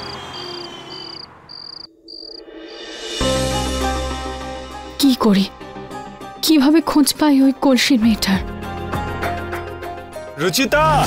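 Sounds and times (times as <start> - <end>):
cricket chirping: 0.0 - 3.1.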